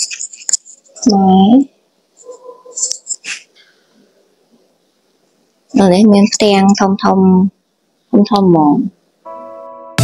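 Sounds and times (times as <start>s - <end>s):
faint room murmur: 0.0s - 9.2s.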